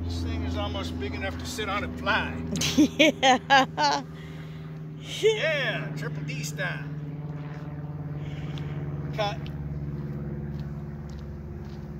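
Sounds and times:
low mechanical hum: 0.0 - 11.9.

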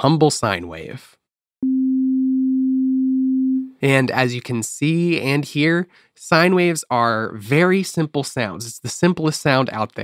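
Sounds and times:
pure sine-wave tone: 1.6 - 3.7.

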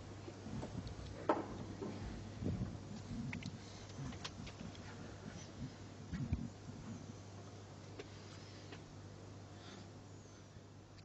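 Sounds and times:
faint small movements: 0.0 - 9.0
steady low hum: 0.0 - 11.0.

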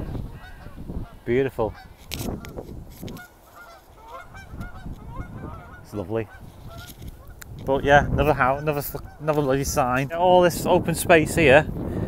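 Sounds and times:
geese honking: 0.0 - 7.4, 8.3 - 9.8.

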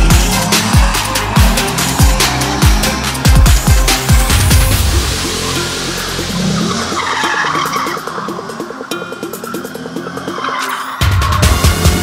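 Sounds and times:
electronic music: 0.0 - 12.0
tyres skidding on tarmac: 0.0 - 12.0.

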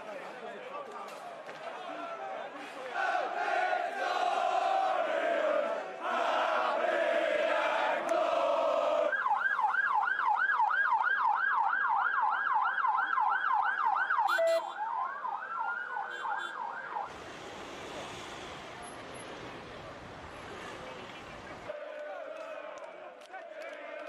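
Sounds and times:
crowd hubbub: 0.0 - 9.1
crowd chanting: 1.6 - 9.2, 21.7 - 24.0
police siren yelp and wail: 8.8 - 17.2.

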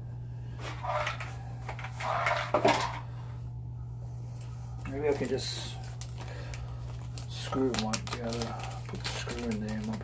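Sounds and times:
low hum: 0.0 - 7.4.

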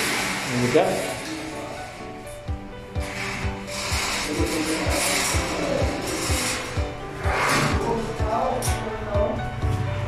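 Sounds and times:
background music with steady beat: 0.0 - 10.0
metal bed frame rubbing and scraping: 0.0 - 10.0.

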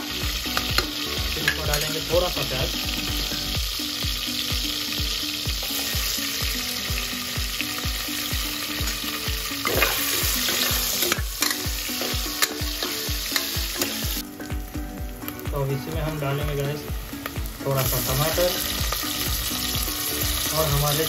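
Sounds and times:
onion sizzling in hot oil: 0.0 - 21.0
metal spoon stirring: 9.7 - 14.1.

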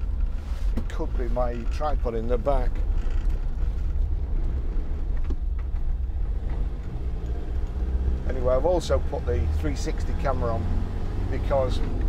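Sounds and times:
faint rattles: 0.0 - 7.0
engine and road drone: 0.0 - 12.0.

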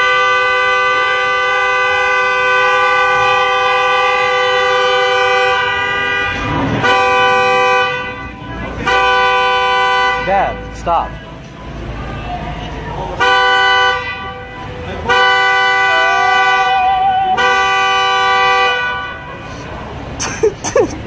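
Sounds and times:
car horn honking: 0.0 - 11.2, 11.8 - 19.8.

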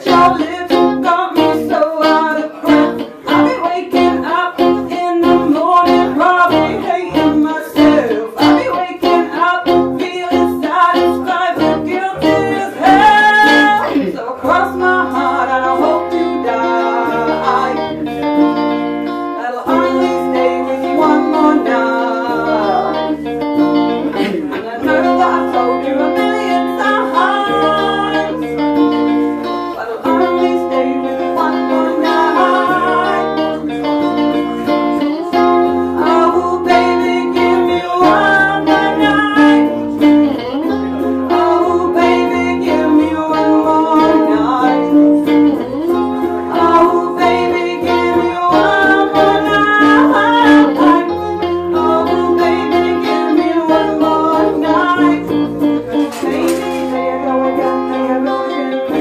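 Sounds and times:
acoustic string instrument strumming: 0.0 - 59.0
woman singing: 0.0 - 59.0.

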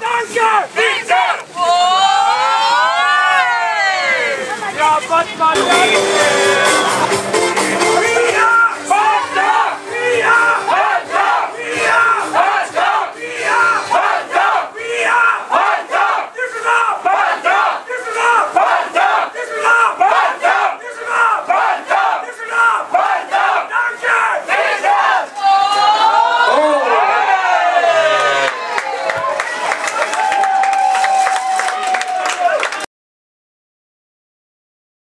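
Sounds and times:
sports fans chanting: 0.3 - 1.6, 5.6 - 28.2.

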